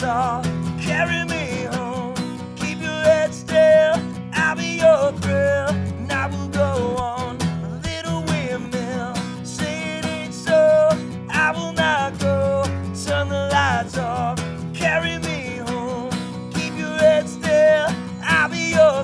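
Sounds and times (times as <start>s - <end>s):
acoustic guitar strumming: 0.0s - 19.0s
man singing: 0.0s - 19.0s.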